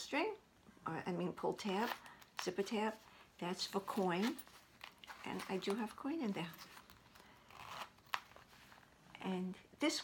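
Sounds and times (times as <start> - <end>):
leather wallet rustling: 1.6 - 9.0.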